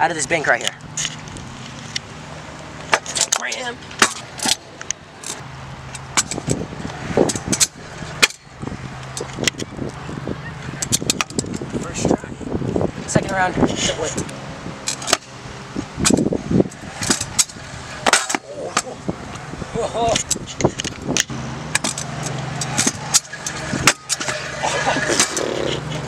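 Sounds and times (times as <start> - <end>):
scooter wheels rolling on concrete: 0.0 - 26.0
scooter deck clacks and slams: 2.9 - 4.6, 6.0 - 6.6, 10.8 - 11.6, 17.0 - 19.0, 20.2 - 25.4.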